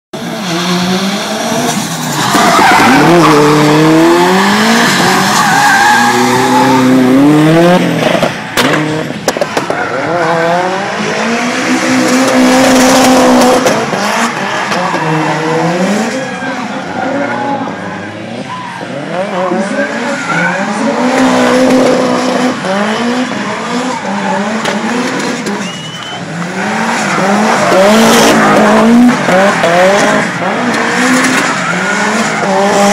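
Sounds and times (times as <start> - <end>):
car engine revving: 0.2 - 32.9
tyres squealing and skidding: 0.2 - 32.9.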